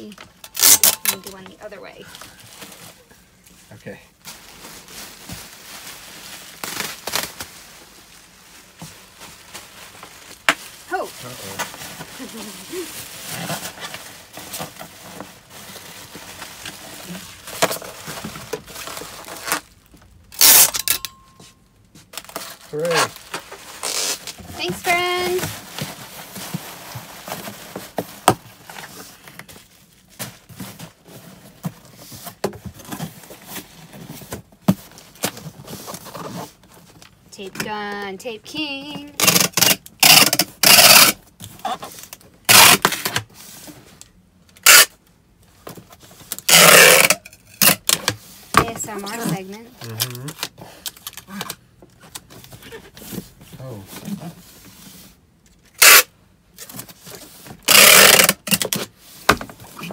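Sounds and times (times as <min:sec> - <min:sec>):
bubble wrap crinkling: 0:00.0 - 0:20.6, 0:22.0 - 0:37.2, 0:38.7 - 0:59.9
loud rip or crunch: 0:39.2 - 0:41.2, 0:46.5 - 0:47.9, 0:55.7 - 0:56.1, 0:57.7 - 0:58.6.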